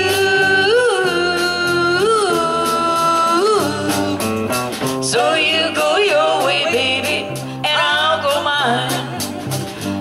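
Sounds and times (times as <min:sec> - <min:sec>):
live band playing country-pop: 0:00.0 - 0:10.0.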